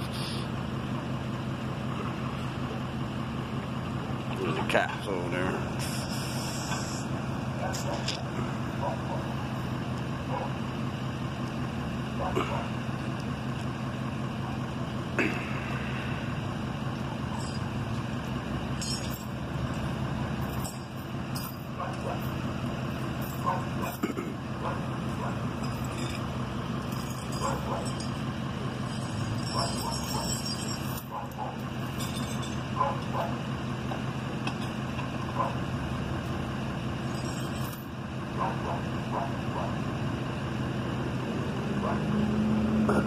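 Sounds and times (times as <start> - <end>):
pickup truck engine idling: 0.0 - 42.1.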